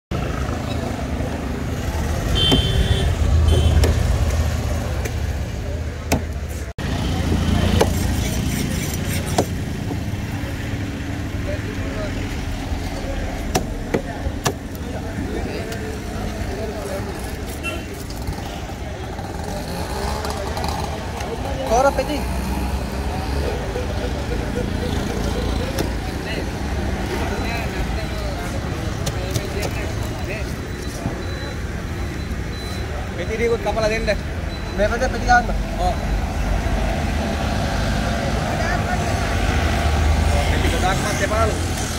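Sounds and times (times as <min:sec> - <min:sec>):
road traffic rumble: 0:00.1 - 0:41.9.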